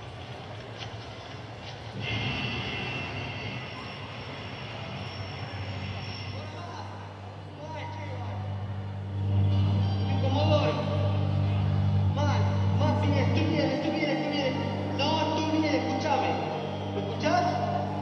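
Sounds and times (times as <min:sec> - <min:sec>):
rumbling noise: 0:00.1 - 0:07.6
low sustained music tones: 0:02.0 - 0:18.0.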